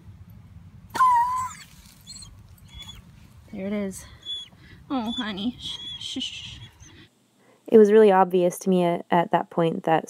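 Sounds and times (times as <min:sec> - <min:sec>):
dog crying out in pain: 0:01.0 - 0:03.0, 0:04.2 - 0:07.1
dog squeaking faintly: 0:01.0 - 0:03.0, 0:04.2 - 0:07.1.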